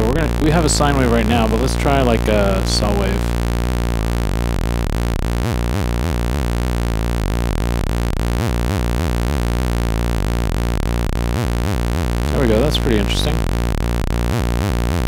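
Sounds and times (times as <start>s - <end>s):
warbling low synth drone: 0.0s - 15.0s.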